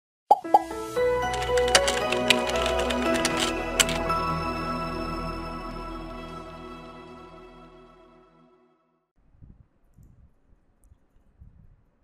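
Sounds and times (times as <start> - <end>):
light melodic music: 0.4 - 8.8.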